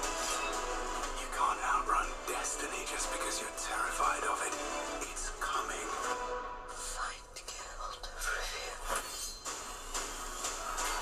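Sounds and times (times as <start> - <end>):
whispered voice: 6.8 - 9.3.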